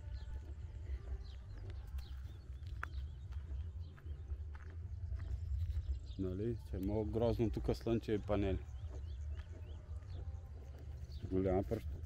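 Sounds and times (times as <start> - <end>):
footsteps on gravel: 0.0 - 12.0
low microphone rumble: 0.0 - 12.0.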